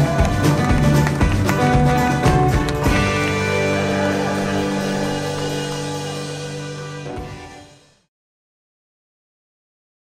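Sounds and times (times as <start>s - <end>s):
live band playing: 0.0s - 8.0s.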